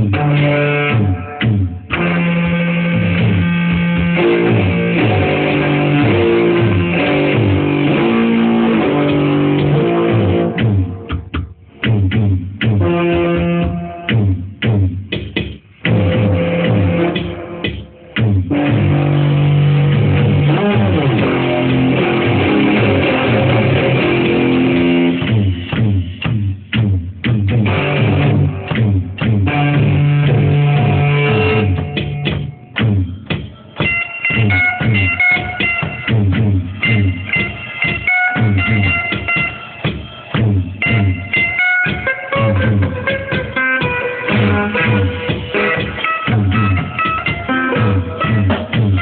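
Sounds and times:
beat: 0.0s - 49.0s
electric guitar riff: 0.0s - 49.0s.

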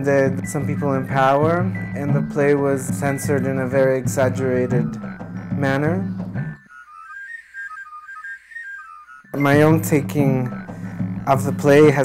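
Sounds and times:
person speaking: 0.0s - 6.2s, 9.3s - 12.0s
high whistle-like melody: 0.0s - 12.0s.

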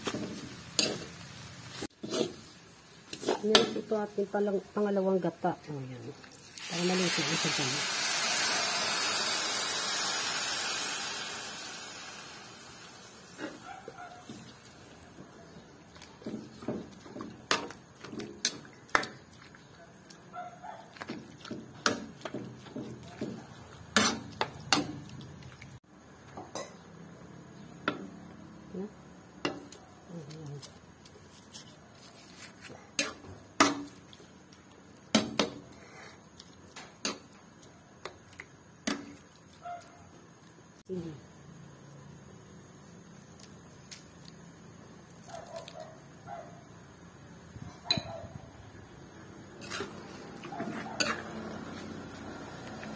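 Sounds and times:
metal spatula scraping wok: 0.0s - 4.0s, 23.9s - 24.9s, 49.6s - 52.9s
liquid sizzling in hot wok: 0.0s - 19.7s, 21.0s - 25.8s, 48.6s - 52.9s.

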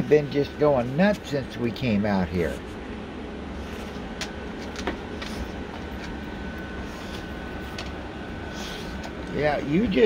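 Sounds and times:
low mechanical rumble: 0.0s - 10.0s.

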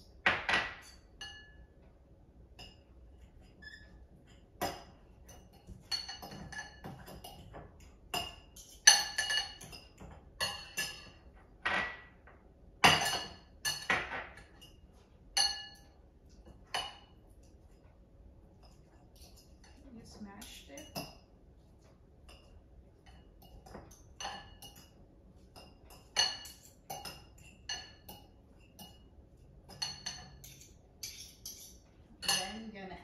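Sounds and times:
forks clinking on glass bowl: 0.7s - 1.7s, 2.6s - 11.3s, 12.8s - 17.2s, 18.6s - 19.8s, 20.4s - 21.3s, 22.3s - 32.8s.

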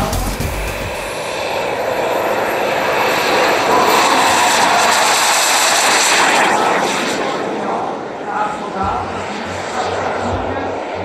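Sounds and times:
jet turbine hiss and whine: 0.0s - 11.0s.

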